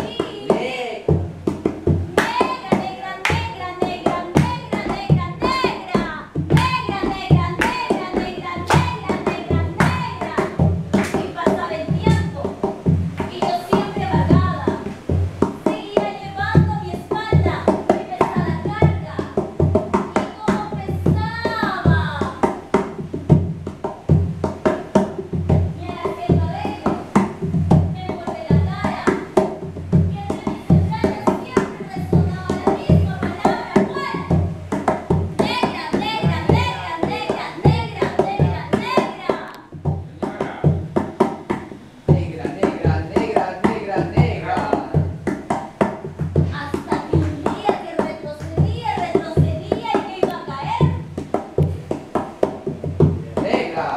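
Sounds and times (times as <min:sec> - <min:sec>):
rhythmic handclaps: 0:00.0 - 0:53.9.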